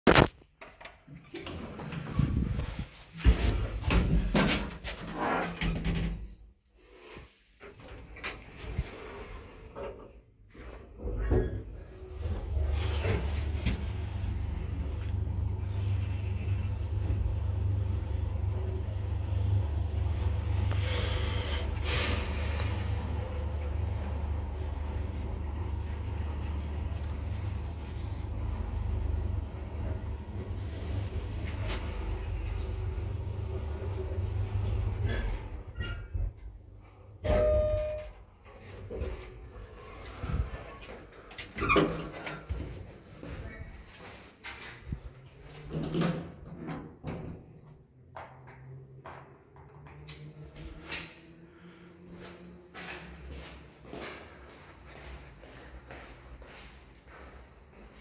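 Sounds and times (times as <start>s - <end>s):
elevator car humming: 7.7s - 42.5s.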